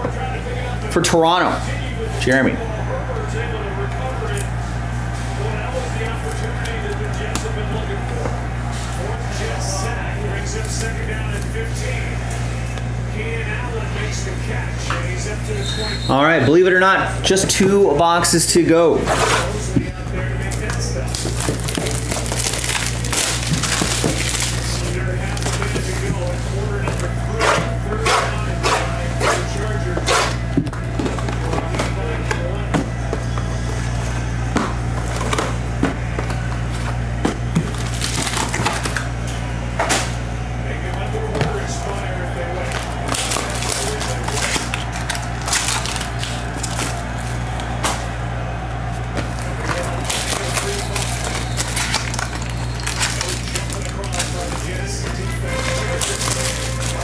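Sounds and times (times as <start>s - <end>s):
foil packs crinkling: 19.4s - 30.5s, 37.6s - 39.1s, 40.9s - 47.8s, 48.9s - 57.0s.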